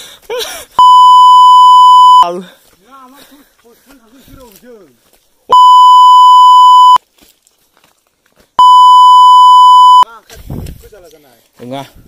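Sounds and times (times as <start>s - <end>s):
high electronic censor bleeps: 0.8s - 2.2s, 5.5s - 7.0s, 8.6s - 10.0s.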